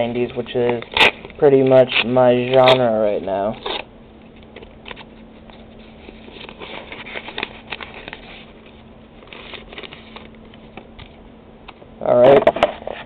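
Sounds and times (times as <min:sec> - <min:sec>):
paper envelope rustling and crinkling: 0:04.8 - 0:10.9.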